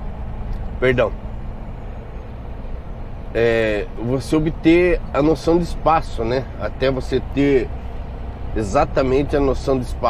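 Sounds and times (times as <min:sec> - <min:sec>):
road noise: 0:00.0 - 0:10.0
truck diesel engine drone: 0:00.0 - 0:10.0.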